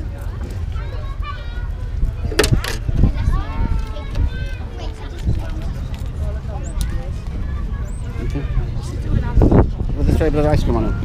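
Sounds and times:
onlookers talking: 0.0s - 11.0s.

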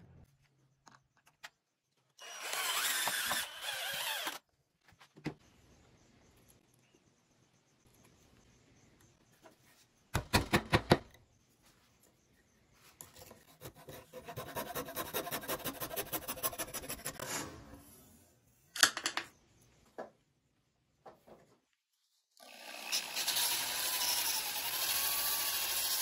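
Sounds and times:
hacksaw blade sawing wood: 2.3s - 4.4s, 13.2s - 17.2s.

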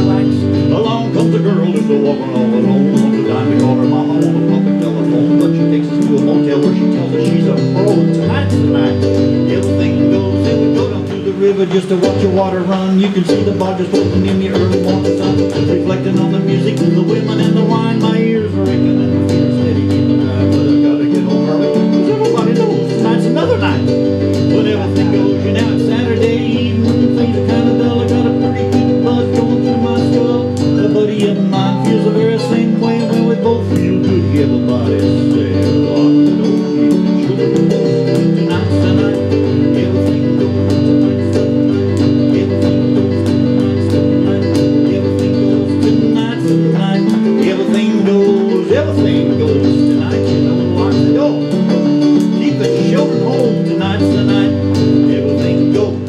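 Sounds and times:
electronic keyboard country music: 0.0s - 56.0s.

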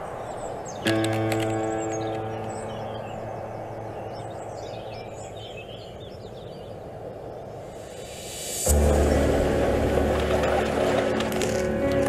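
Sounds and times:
birds chirping faintly: 0.0s - 8.8s
outdoor hiss: 7.5s - 11.3s.

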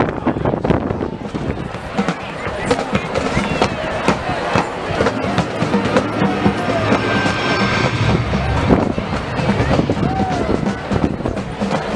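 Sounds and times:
stadium crowd chatter: 0.0s - 11.9s
steady low rumble: 4.8s - 10.9s.

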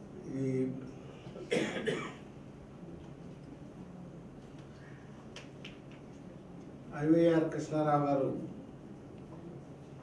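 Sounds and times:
man coughing: 1.4s - 2.2s.

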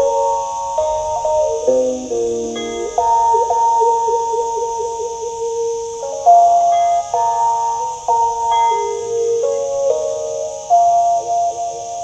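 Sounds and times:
stick zither melody: 0.0s - 12.0s.

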